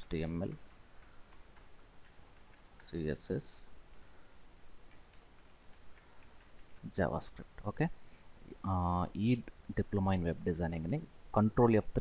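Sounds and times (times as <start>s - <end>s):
computer keyboard keystrokes: 0.0s - 7.5s.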